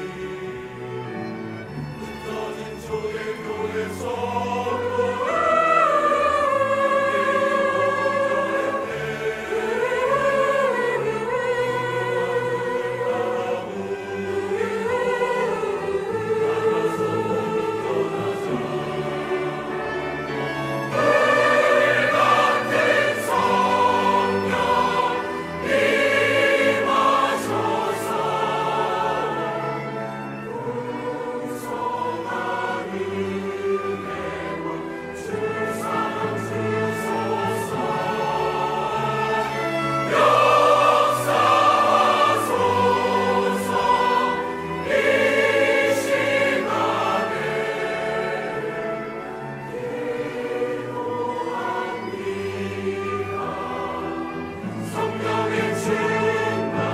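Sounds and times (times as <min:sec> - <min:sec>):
chamber orchestra: 0:00.0 - 0:56.9
mixed choir singing a hymn: 0:00.0 - 0:56.9.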